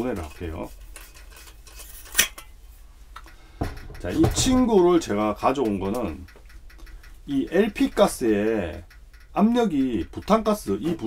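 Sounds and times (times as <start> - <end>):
metal click: 3.2 - 10.6
cylinder knocking on wooden table: 3.6 - 4.6
faint tick: 5.4 - 10.7.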